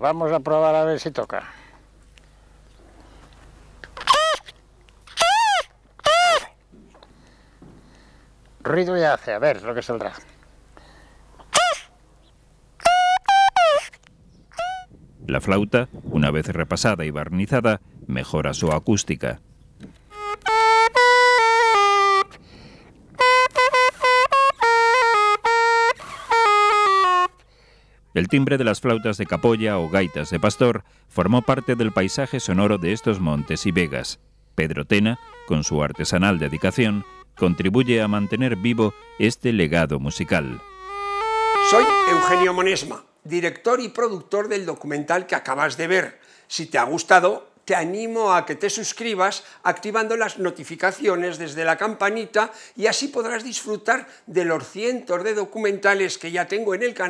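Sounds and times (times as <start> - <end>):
reed pipe notes: 20.0 - 42.9.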